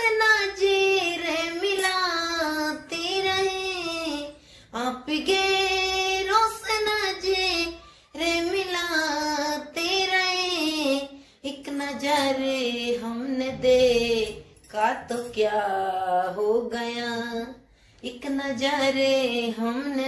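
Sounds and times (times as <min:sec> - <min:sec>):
woman singing unaccompanied: 0:00.0 - 0:20.0
woman breathing: 0:04.3 - 0:04.8, 0:07.8 - 0:08.2, 0:11.1 - 0:11.5, 0:17.6 - 0:18.0.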